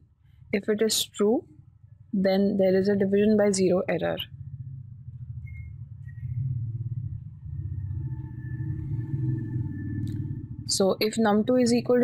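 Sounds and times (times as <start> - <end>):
low steady background rumble: 0.0 - 12.0
faint high whine: 0.6 - 12.0.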